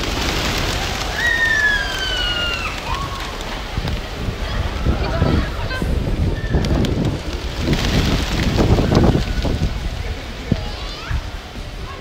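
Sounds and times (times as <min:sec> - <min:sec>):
pigeon wingbeats rushing: 0:00.0 - 0:10.8
wind buffeting microphone: 0:00.0 - 0:12.0.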